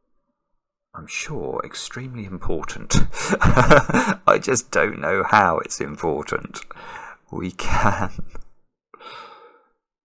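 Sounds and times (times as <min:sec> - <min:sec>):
man speaking: 0:01.0 - 0:08.4
man sighing: 0:09.0 - 0:09.7.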